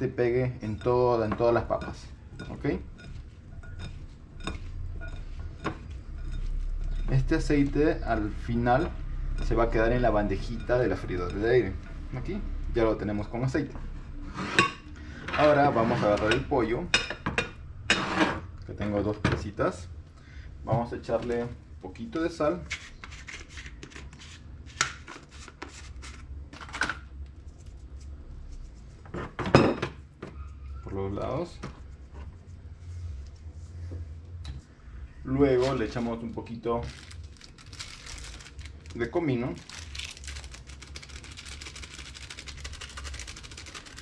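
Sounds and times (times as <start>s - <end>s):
steady low hum: 0.0s - 44.0s
plastic packet crinkling: 35.6s - 44.0s.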